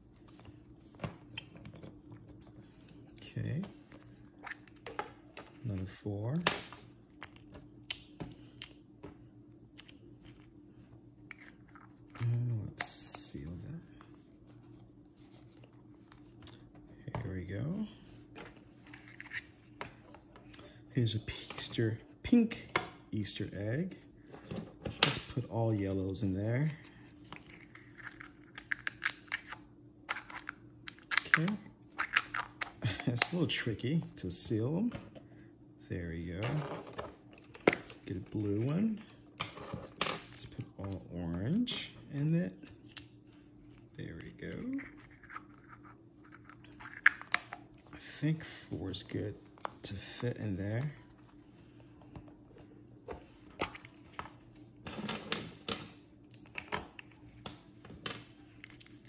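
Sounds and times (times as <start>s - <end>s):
faint steady hum: 0.0s - 59.0s.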